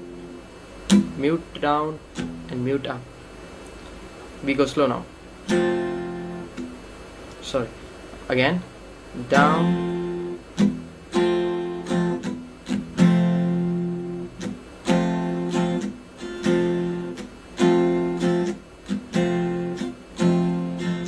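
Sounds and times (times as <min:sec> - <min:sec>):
acoustic guitar strumming: 0:00.0 - 0:02.9, 0:05.4 - 0:06.8, 0:09.2 - 0:21.0.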